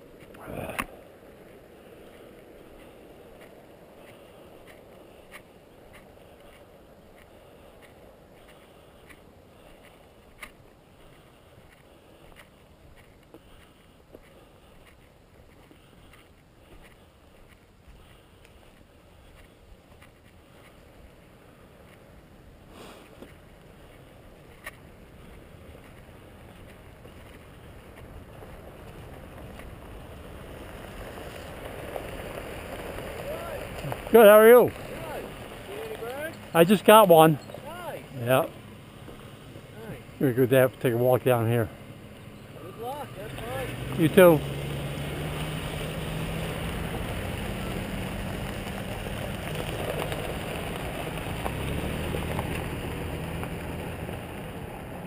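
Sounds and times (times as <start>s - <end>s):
tyres on gravel: 0.0s - 55.0s
truck engine: 23.6s - 55.0s.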